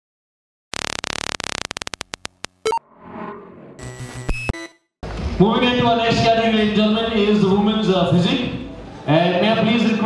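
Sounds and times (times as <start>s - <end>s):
stutter of glitch clicks: 0.7s - 2.8s, 3.8s - 4.9s
digital noise and glitch tones: 0.8s - 2.8s, 3.8s - 4.8s.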